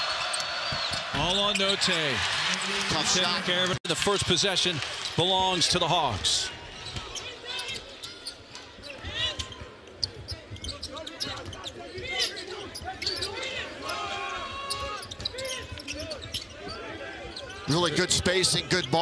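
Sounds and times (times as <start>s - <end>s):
sneaker squeaks: 6.7s - 13.6s, 14.3s - 17.7s.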